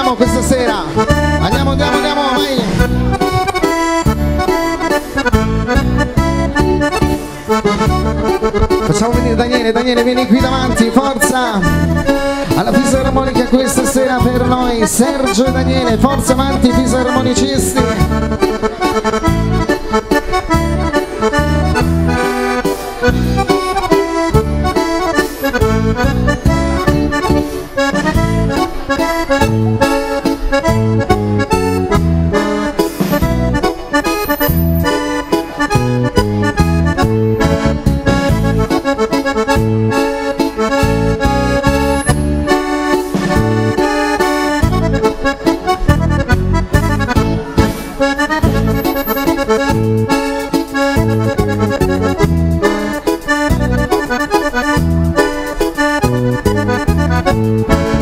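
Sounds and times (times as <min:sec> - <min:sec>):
accordions playing dance tune: 0:00.0 - 0:58.0
steady bass beat: 0:00.3 - 0:09.6, 0:20.5 - 0:32.5, 0:35.7 - 0:38.8, 0:40.8 - 0:58.0.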